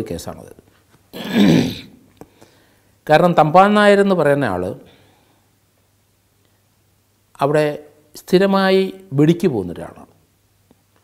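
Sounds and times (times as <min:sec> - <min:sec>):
man clearing his throat: 0:01.2 - 0:02.0.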